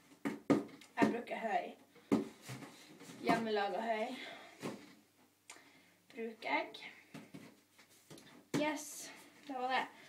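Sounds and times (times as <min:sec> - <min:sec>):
woman speaking: 0:03.2 - 0:04.3.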